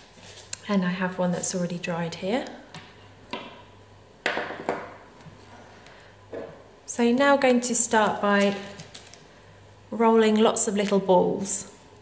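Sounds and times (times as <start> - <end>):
objects knocking on tabletop: 4.2 - 5.0, 6.3 - 6.6.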